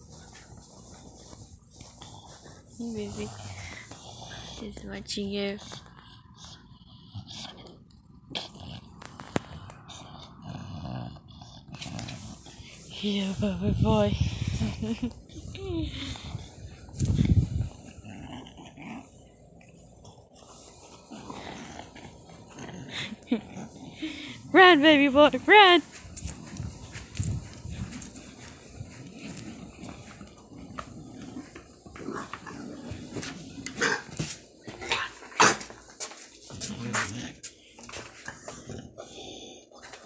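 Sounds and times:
dog breathing: 0:00.0 - 0:24.6, 0:25.8 - 0:33.6, 0:36.5 - 0:40.0.

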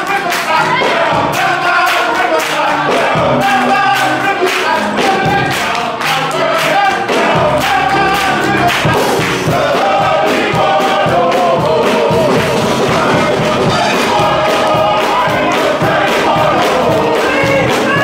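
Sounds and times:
men's choir singing gospel: 0:00.0 - 0:18.0
steady beat: 0:00.0 - 0:18.0.

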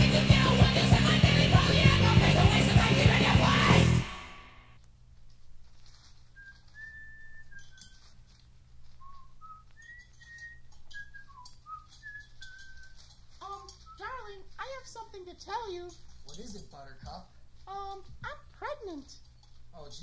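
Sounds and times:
person whistling a tune: 0:06.4 - 0:07.9, 0:09.0 - 0:13.0.

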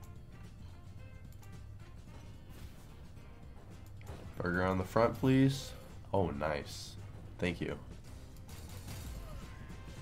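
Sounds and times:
looping game music: 0:00.0 - 0:10.0.

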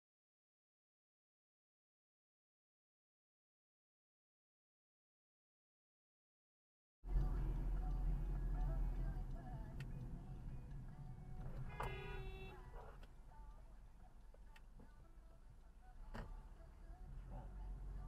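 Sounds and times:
car engine and road noise: 0:07.0 - 0:18.0
car horn honking: 0:11.5 - 0:12.7.

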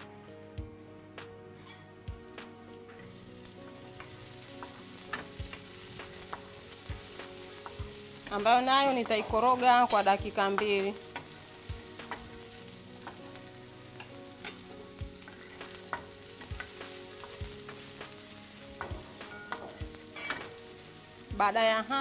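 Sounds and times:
vegetables sizzling in oil: 0:02.2 - 0:22.0.

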